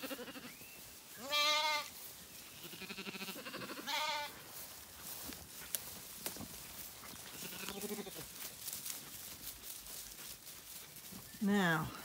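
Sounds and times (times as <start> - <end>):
lamb bleating: 0.0 - 0.5, 1.2 - 1.9, 2.6 - 4.3, 7.3 - 8.3
rustles and knocks of movement: 4.4 - 11.4.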